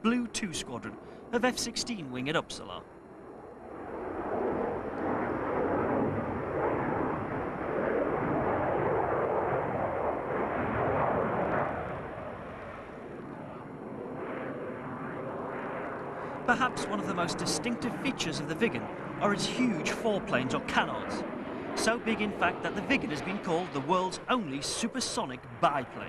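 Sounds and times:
jet engine flying past: 0.0s - 26.0s.

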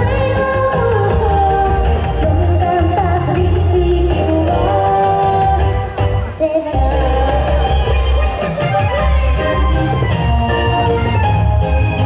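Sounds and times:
woman singing into a microphone: 0.0s - 9.3s.

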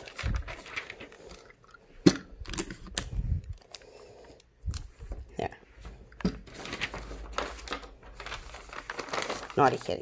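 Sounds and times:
paper rustling: 0.0s - 1.6s, 4.7s - 10.0s.

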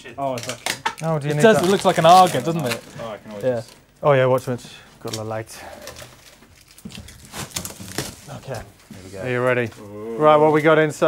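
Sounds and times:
plastic wrapping crinkling: 0.2s - 10.7s.

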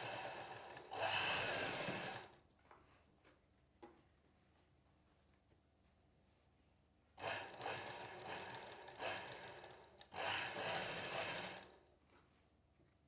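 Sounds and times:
cloth rustling and rubbing: 2.8s - 7.1s.

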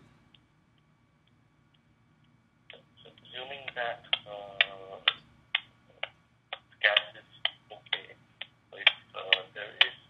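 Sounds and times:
voice over telephone line: 3.0s - 5.2s, 6.0s - 8.1s, 8.8s - 10.0s.

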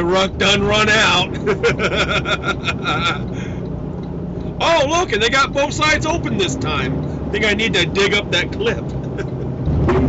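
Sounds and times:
road and engine noise in car: 0.0s - 10.0s
man laughing: 1.3s - 3.4s, 8.9s - 10.0s.

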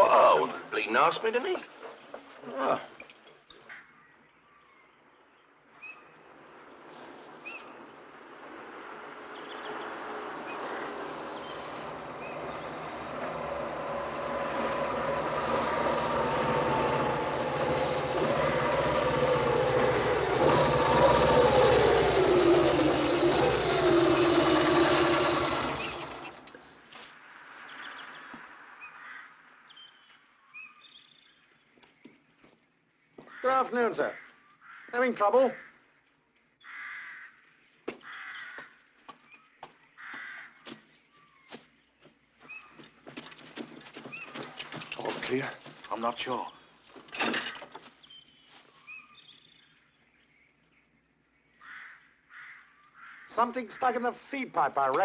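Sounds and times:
motorcycle engine: 7.7s - 26.9s, 46.9s - 48.0s.

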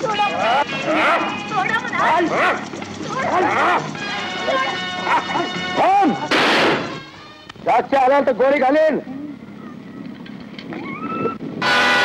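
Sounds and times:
background music: 0.0s - 8.4s.

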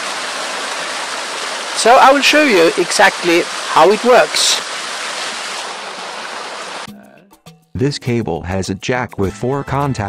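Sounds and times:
waterfall splashing into pond: 0.0s - 6.9s.

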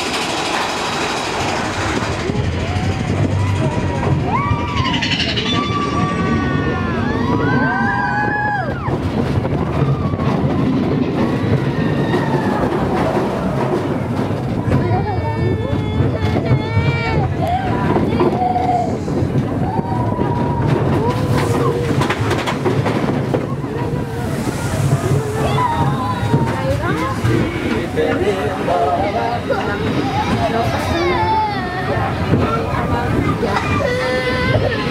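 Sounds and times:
roller coaster rumbling on track: 0.0s - 34.9s
riders calling and whooping: 1.5s - 14.0s.

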